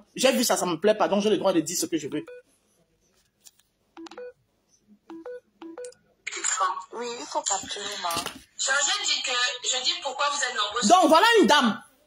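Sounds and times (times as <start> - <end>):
person speaking: 0.0 - 2.4.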